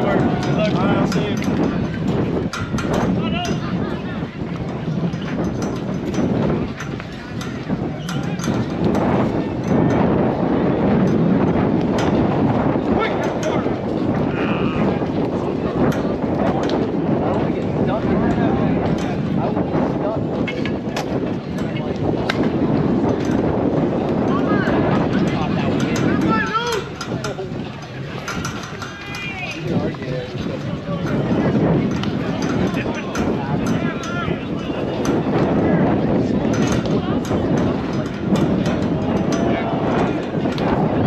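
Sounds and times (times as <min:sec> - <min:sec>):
wind buffeting microphone: 0:00.0 - 0:41.0
players' voices and shouts: 0:02.8 - 0:04.6, 0:12.7 - 0:15.8, 0:24.0 - 0:41.0.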